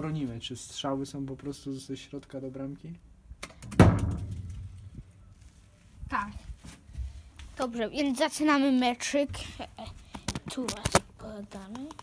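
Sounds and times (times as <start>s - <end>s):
loud thump on metal box: 3.6s - 4.7s.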